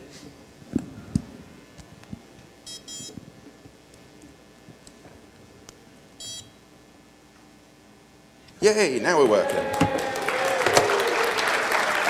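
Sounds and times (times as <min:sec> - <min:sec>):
card reader beep: 0:02.7 - 0:03.2, 0:06.2 - 0:06.6.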